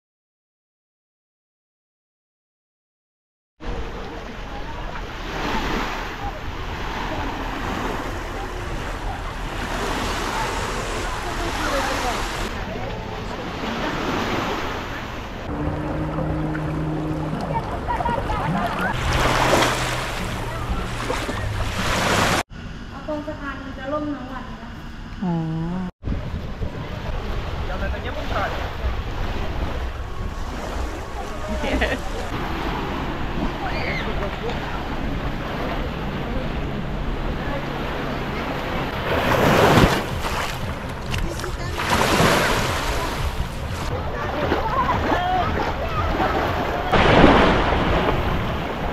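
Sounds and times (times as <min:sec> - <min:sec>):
waves lapping over rocks: 0:13.6 - 0:22.4, 0:38.8 - 0:48.9
steady low hum: 0:14.9 - 0:21.8, 0:22.5 - 0:27.6
wind on microphone: 0:26.0 - 0:36.4.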